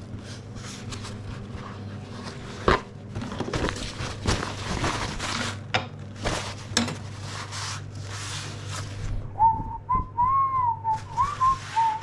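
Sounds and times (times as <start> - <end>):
paper towel rustling: 0.0 - 9.5, 10.3 - 12.0
person whistling a tune: 9.4 - 12.0.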